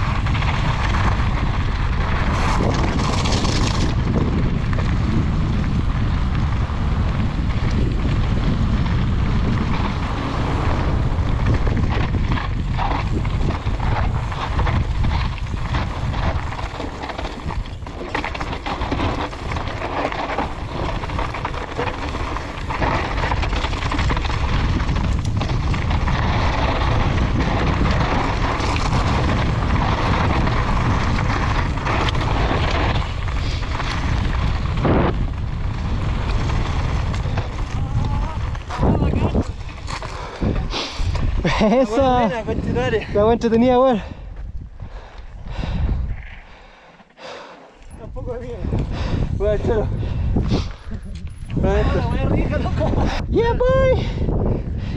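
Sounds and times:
tyres crunching on gravel: 0:00.0 - 0:42.6
wind buffeting microphone: 0:00.0 - 0:54.9
bike knocking over bumps: 0:07.3 - 0:38.8.

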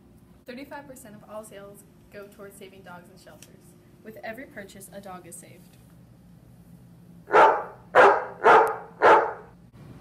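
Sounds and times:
dog barking: 0:07.3 - 0:09.5.

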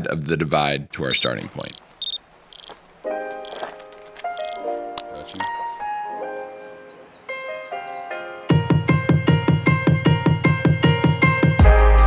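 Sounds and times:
short high electronic beeps: 0:01.6 - 0:02.7, 0:04.4 - 0:04.6
soft electronic music: 0:01.6 - 0:07.0.

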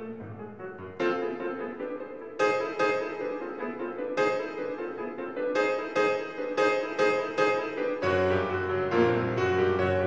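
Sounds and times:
grand piano classical passage: 0:00.0 - 0:10.0.

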